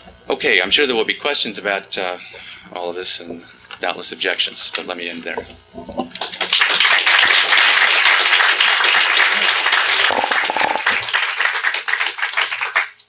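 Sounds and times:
audience applauding: 6.2s - 13.0s.

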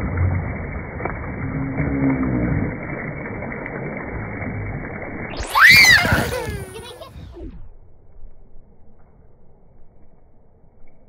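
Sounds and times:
pool water splashing: 0.0s - 7.2s
person squealing: 5.4s - 7.2s.

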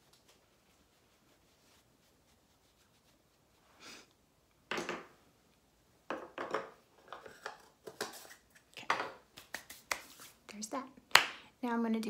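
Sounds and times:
makeup items clattering on counter: 4.7s - 5.1s, 6.1s - 8.3s, 8.9s - 9.2s.

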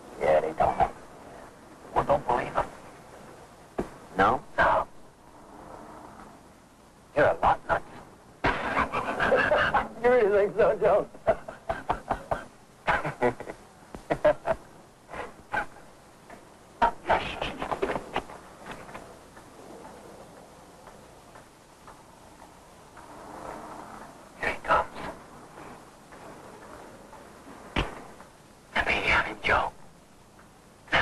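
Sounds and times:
men laughing and yelling: 8.5s - 14.6s.

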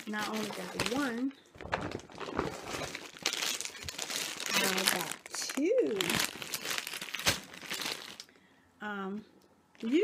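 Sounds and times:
plastic bag crinkling: 0.0s - 8.4s.

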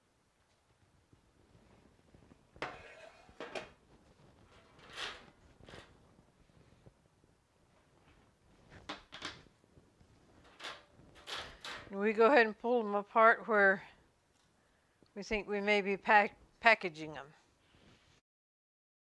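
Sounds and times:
metal pan knocks and clatters: 2.6s - 3.8s
wire racks shifting on stone: 4.4s - 6.0s, 10.4s - 12.0s.

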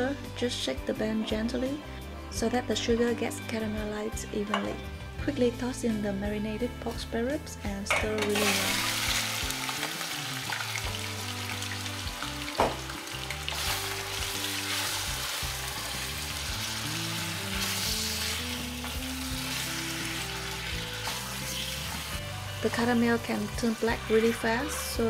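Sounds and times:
soft background music: 0.0s - 25.0s
meat sizzling in a saucepan: 8.2s - 25.0s
knock against the pan: 12.5s - 12.9s
spatula stirring: 17.1s - 25.0s.

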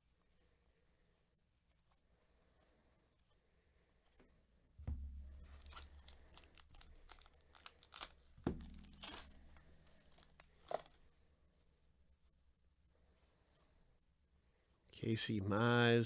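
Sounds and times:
dull thumps: 4.8s - 7.2s, 8.0s - 10.9s
plastic wrapper tearing and crinkling: 5.4s - 11.0s.

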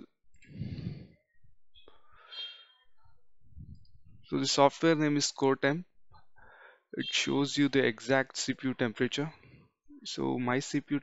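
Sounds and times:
faint breathing: 0.4s - 2.8s, 6.3s - 6.9s.

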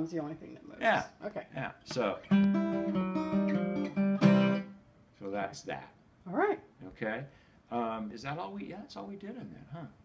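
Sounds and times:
acoustic guitar fingerpicked: 1.8s - 4.8s.

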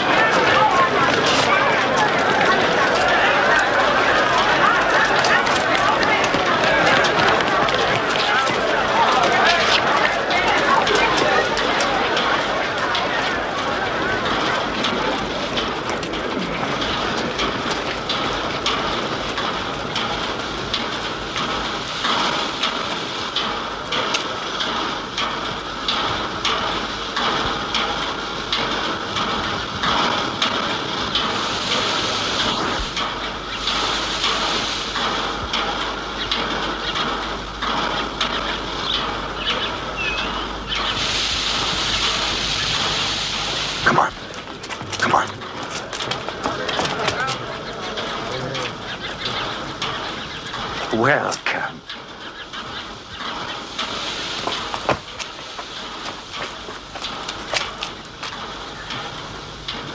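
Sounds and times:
train rumbling and clattering: 0.0s - 59.9s
hissing bursts: 28.6s - 46.5s, 52.8s - 59.4s.

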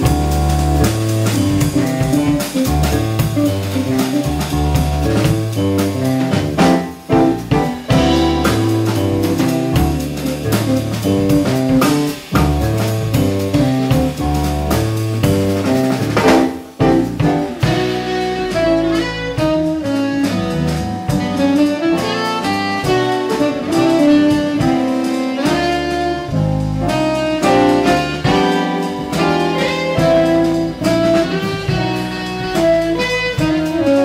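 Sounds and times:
electric bass guitar: 0.0s - 34.0s
jazz band playing: 0.0s - 34.0s.

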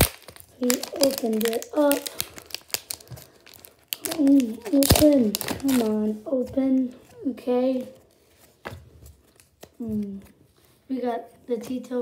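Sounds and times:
foil wrapper crinkling: 0.0s - 6.2s.

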